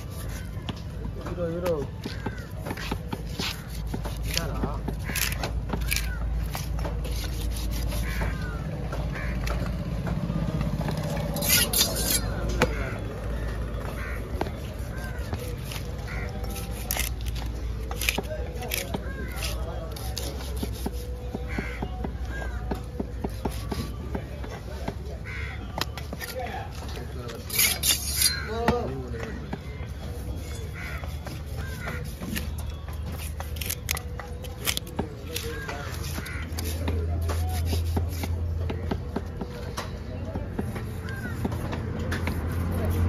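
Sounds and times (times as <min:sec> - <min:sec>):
knife slicing fish: 0:00.0 - 0:00.5, 0:02.2 - 0:08.5, 0:11.2 - 0:12.4, 0:14.4 - 0:21.8, 0:27.4 - 0:28.5, 0:30.4 - 0:38.4
knife scraping wooden block: 0:00.0 - 0:00.9, 0:02.0 - 0:08.6, 0:11.0 - 0:12.9, 0:14.0 - 0:21.8, 0:26.0 - 0:28.6, 0:30.2 - 0:38.6
distant voices: 0:00.0 - 0:43.0.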